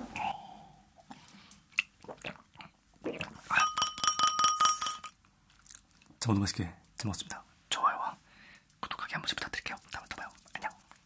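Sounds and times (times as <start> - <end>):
drinking glass tapped ringing: 3.6 - 5.1.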